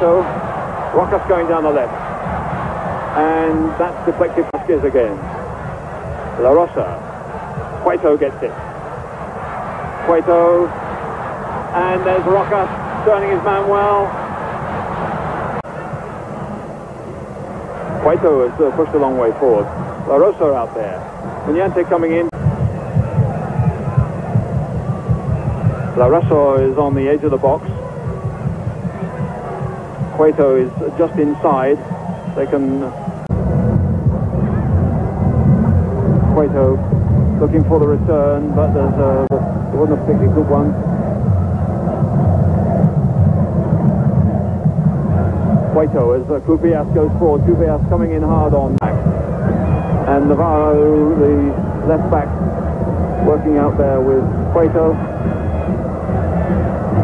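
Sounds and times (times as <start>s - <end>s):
stadium crowd hum: 0.0s - 57.0s.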